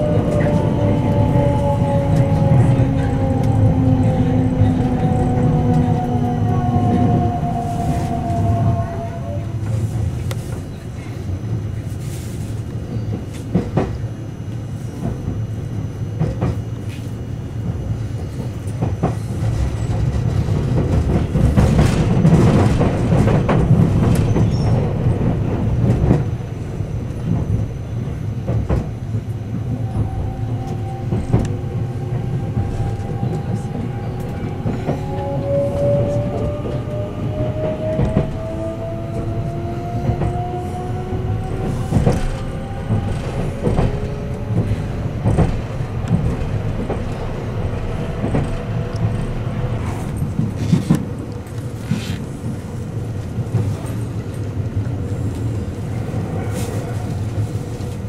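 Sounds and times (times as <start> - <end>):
train wheels rumbling on rails: 0.0 - 58.0.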